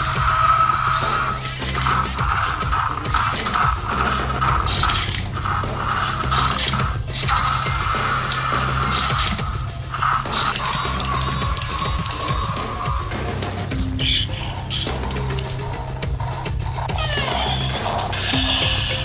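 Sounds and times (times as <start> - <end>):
background music: 0.0 - 19.0
toy motors whirring and clicking: 0.0 - 19.0.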